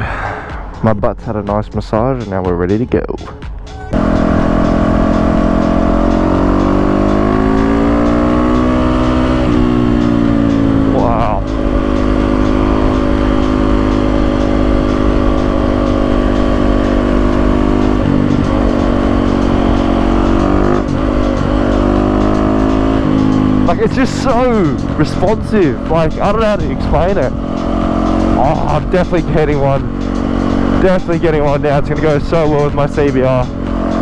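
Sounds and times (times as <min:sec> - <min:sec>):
motorcycle engine running: 0:03.9 - 0:34.0.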